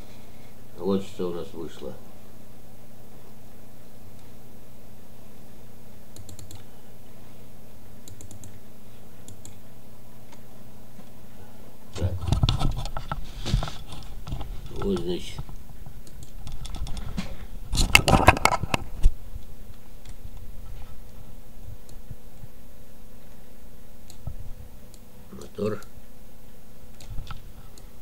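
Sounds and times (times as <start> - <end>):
steady low hum: 0.0 - 28.0
rapid clicking and rustling: 12.2 - 20.9.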